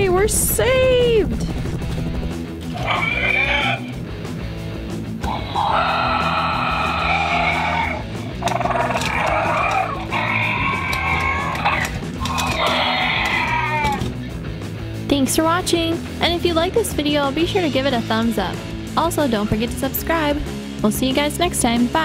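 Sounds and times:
background music: 0.0s - 22.0s
dinosaur roars: 2.7s - 4.0s, 5.2s - 14.1s.

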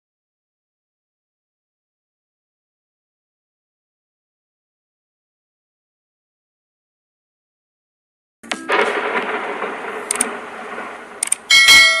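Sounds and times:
rushing noise: 8.7s - 12.0s
notification bell ding: 11.5s - 12.0s.

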